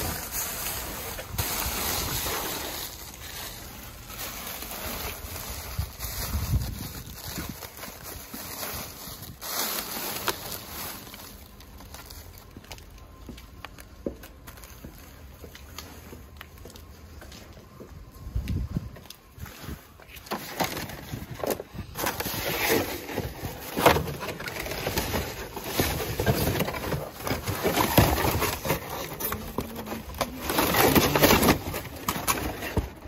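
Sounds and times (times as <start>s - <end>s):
trash bags and cardboard rustling: 0.0s - 33.0s.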